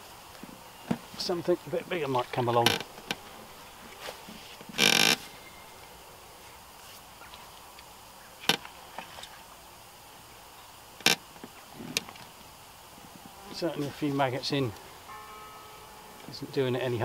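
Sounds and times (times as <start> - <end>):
faint outdoor background: 0.0 - 17.0
tackle rustle: 1.0 - 7.7.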